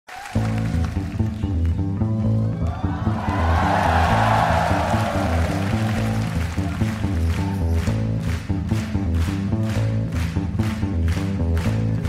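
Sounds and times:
repeating bass line: 0.4 - 12.0.

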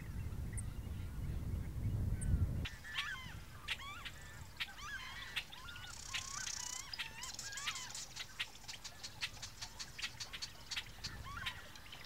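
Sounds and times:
wind rumble on microphone: 0.0 - 7.9, 9.7 - 12.0
bird chirps: 0.0 - 12.0.

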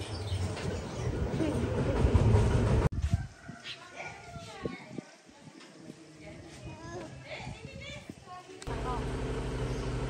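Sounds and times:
engine humming: 8.6 - 10.0.

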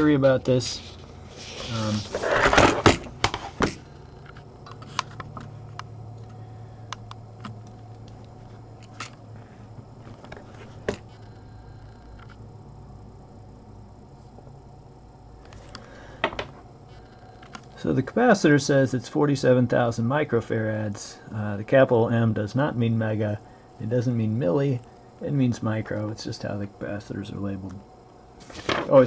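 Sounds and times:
transformer low hum: 0.0 - 28.4.

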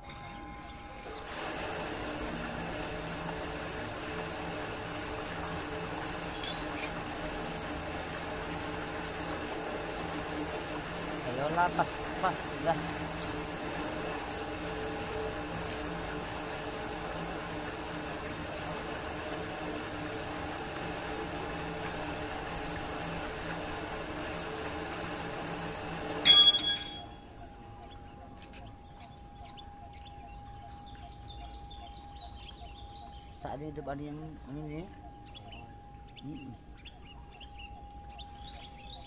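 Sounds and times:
water pump humming: 0.0 - 39.0
sharp metallic clack: 26.2 - 27.2.

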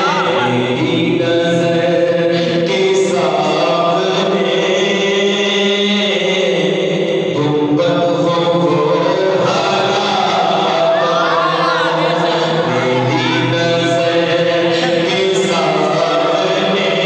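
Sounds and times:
man singing into a microphone: 0.0 - 17.0.

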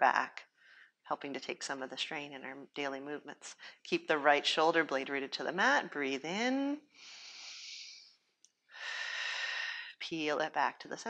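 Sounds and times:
woman breathing: 0.4 - 1.0, 6.9 - 10.0.

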